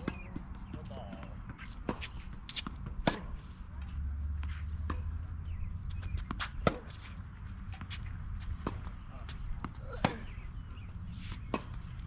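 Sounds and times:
balls bouncing on hard court: 0.0s - 3.5s, 5.9s - 12.0s
tennis balls struck by racquets: 0.0s - 12.0s.

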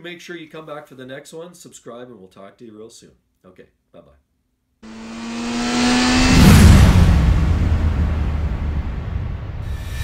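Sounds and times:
rising swell: 4.8s - 10.0s
deep boom: 4.9s - 10.0s
long low rumble: 4.9s - 10.0s.

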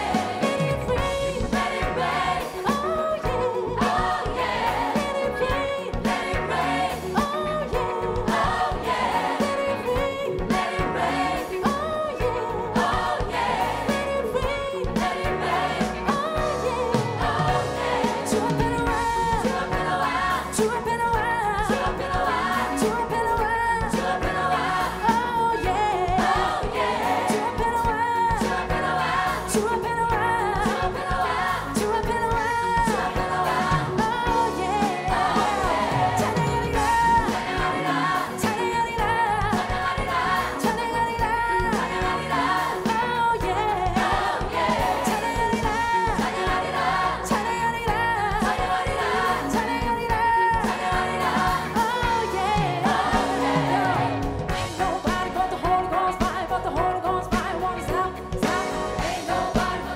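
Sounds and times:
band playing: 0.0s - 59.9s
choir singing: 0.0s - 59.9s
drum kit beat: 0.0s - 59.9s
woman singing lead: 0.0s - 59.9s.

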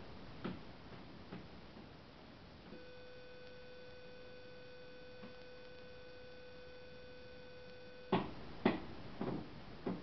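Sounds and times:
faint electrical whine: 0.0s - 10.0s.

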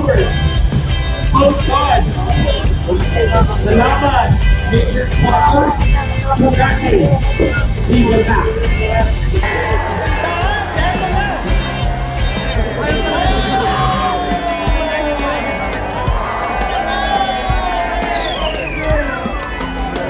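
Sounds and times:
crowd chattering and cheering: 0.0s - 20.0s
loud amplified music with bass: 0.0s - 20.0s
falling pitch sweep: 9.4s - 19.2s.

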